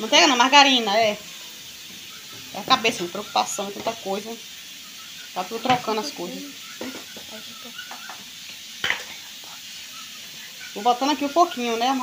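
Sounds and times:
pot of beans cooking hiss: 0.0 - 12.0.

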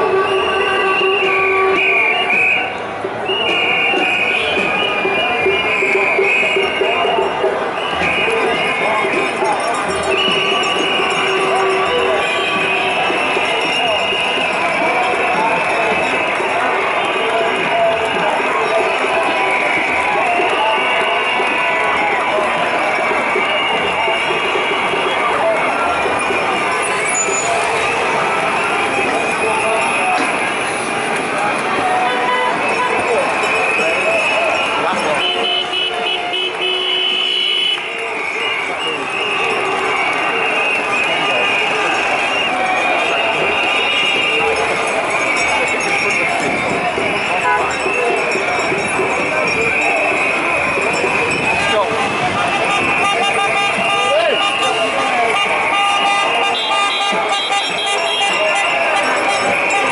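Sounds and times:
crowd voices: 0.0 - 59.9
road traffic passing: 0.0 - 59.9.

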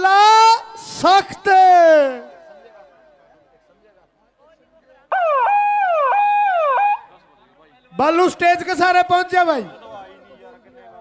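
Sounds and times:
electronic siren falling in pitch: 5.1 - 7.1.

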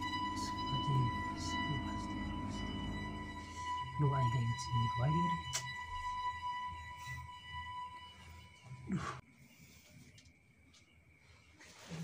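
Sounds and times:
short falling-pitch sound: 0.0 - 5.1
high tone drone over low hum: 0.0 - 8.9.

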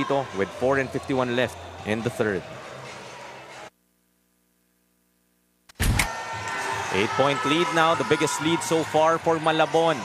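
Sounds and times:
faint steady hum: 3.7 - 5.7.

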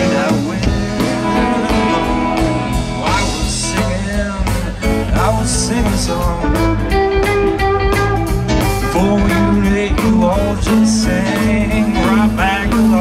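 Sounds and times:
bass: 0.0 - 13.0
drums: 0.0 - 13.0
electric guitars: 0.0 - 13.0
keyboards: 0.0 - 13.0.

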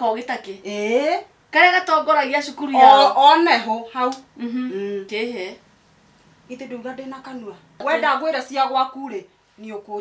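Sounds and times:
woman speaking: 0.0 - 5.6, 6.5 - 10.0
woman humming: 4.4 - 5.1.

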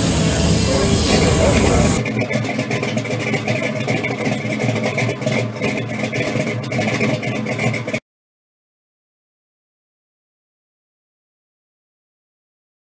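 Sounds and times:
car engine idling: 0.0 - 8.0.

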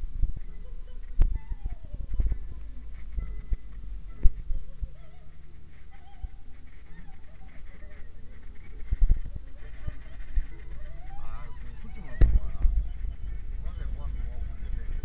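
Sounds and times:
heavy thumps: 0.0 - 15.0
muffled voice: 0.4 - 15.0.

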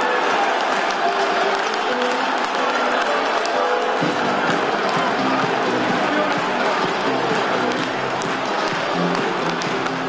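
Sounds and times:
crowd cheering: 0.0 - 10.0
crowd clapping: 0.0 - 10.0
music: 0.0 - 10.0.

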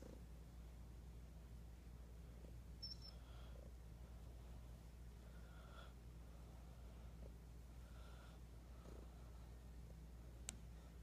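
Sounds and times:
cat purring: 0.0 - 0.4, 6.4 - 10.0.

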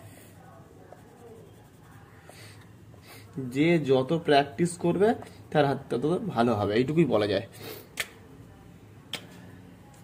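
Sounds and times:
pencil scratching on paper: 0.0 - 2.7.

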